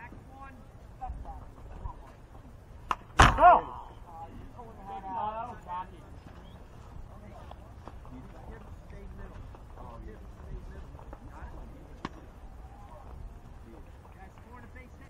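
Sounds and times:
umpire shouting: 3.3 - 4.1
faint voices: 3.4 - 15.0.

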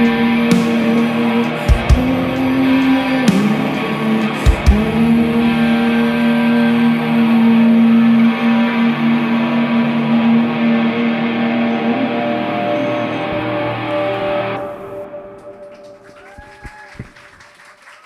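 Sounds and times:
electric guitar through effects: 0.0 - 17.1.

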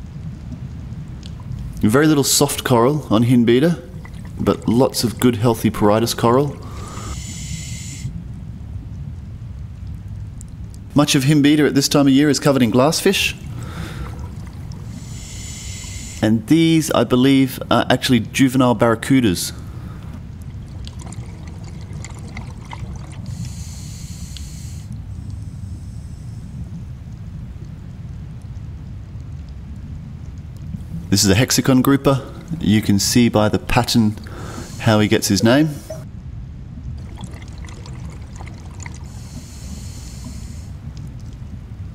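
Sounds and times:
underwater rumble: 0.0 - 41.9
faint clicks: 0.1 - 1.8, 23.3 - 26.0
high hiss: 6.4 - 8.2, 14.8 - 16.7, 23.3 - 26.6, 39.0 - 40.8.

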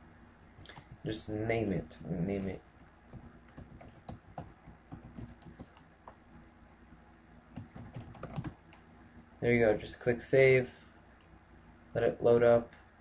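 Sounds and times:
computer keyboard typing: 1.6 - 5.9, 7.6 - 8.8.

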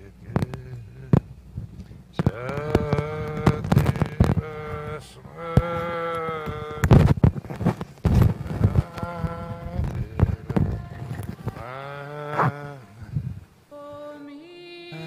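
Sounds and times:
person chanting: 0.0 - 1.2, 2.2 - 6.9, 8.4 - 15.0
sharp clicks: 1.8 - 4.8.

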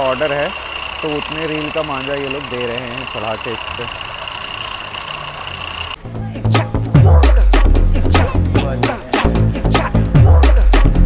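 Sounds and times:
winding machines whining and humming: 0.0 - 6.0.

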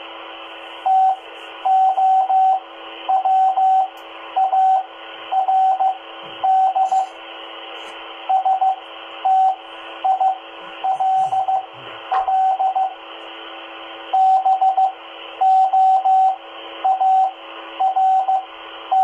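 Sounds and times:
receiver hiss: 0.0 - 19.0
morse code tone: 0.8 - 7.2, 8.2 - 13.0, 14.1 - 19.0.

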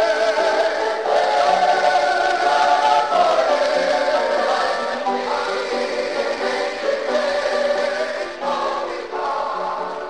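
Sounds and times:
musical accompaniment: 0.0 - 10.0
voices singing gospel: 0.0 - 10.0.

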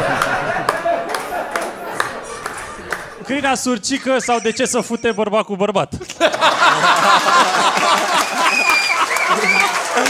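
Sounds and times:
audience applauding: 0.0 - 3.2, 6.2 - 10.0
audience laughing: 0.0 - 5.2, 6.0 - 10.0.

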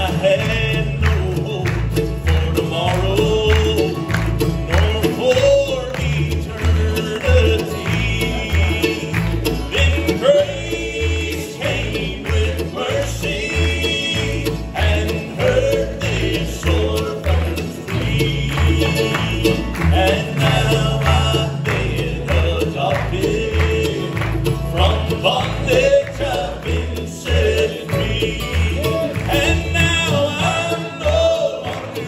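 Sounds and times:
acoustic guitars: 0.0 - 32.0
mandolin: 0.0 - 32.0
upright bass: 0.0 - 32.0
voices singing: 0.0 - 32.0.

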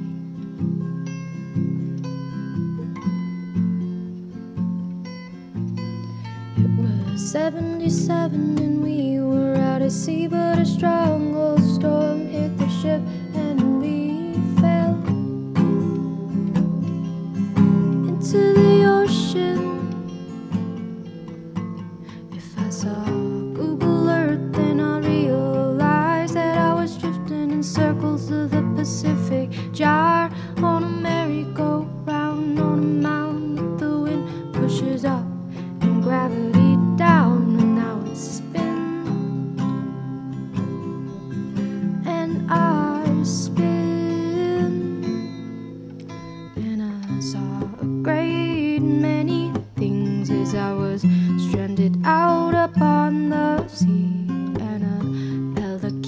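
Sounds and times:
acoustic guitar: 0.0 - 56.0
person singing: 6.6 - 16.8, 18.0 - 20.8, 22.0 - 39.1, 42.0 - 45.2, 46.5 - 56.0.

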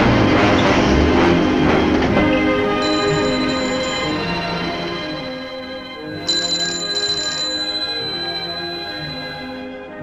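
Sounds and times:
film score music: 0.0 - 10.0
telephone bell ringing: 2.6 - 9.8.

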